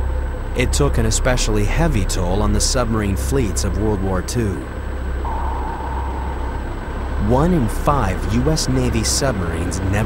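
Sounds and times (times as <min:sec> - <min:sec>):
deep underwater rumble: 0:05.1 - 0:08.0
thin held tone: 0:05.2 - 0:07.6.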